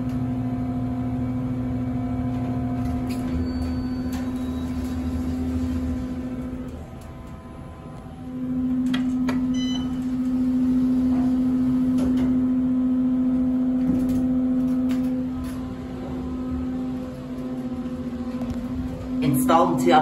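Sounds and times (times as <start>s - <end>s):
elevator low hum: 0.0s - 20.0s
electronic beep: 9.5s - 10.0s.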